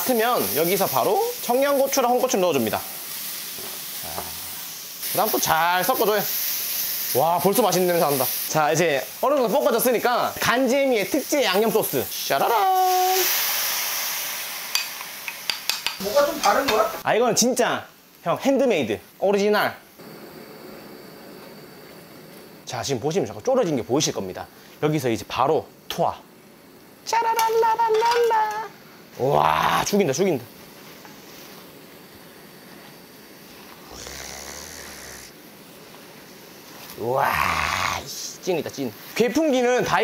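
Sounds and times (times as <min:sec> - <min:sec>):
sauce sizzling in hot wok: 0:00.0 - 0:40.0
light tap on wok: 0:14.7 - 0:16.8.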